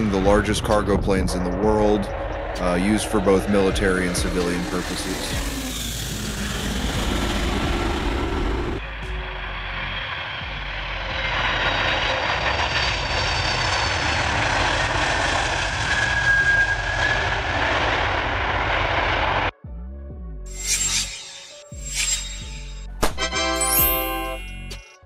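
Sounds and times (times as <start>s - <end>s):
jet engines roaring with high whine: 0.0s - 19.5s.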